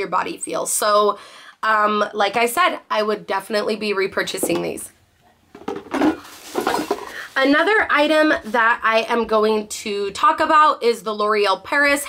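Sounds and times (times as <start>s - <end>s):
plastic bottles clattering: 5.5s - 7.8s.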